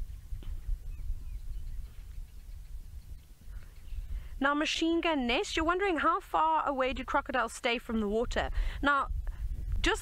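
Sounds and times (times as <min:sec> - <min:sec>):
faint bird chirps: 0:00.1 - 0:04.3.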